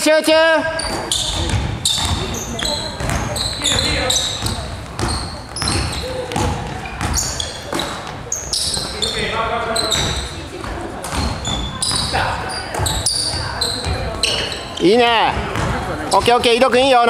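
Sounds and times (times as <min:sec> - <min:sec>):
players' voices: 0:00.0 - 0:17.0
shoes squeaking on hardwood floor: 0:00.6 - 0:17.0
basketball bouncing: 0:00.7 - 0:16.9.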